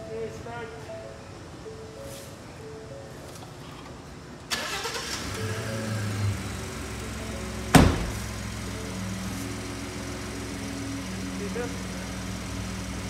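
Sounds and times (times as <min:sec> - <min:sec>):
truck engine idling: 0:04.5 - 0:13.0
truck door slamming: 0:07.7 - 0:08.4.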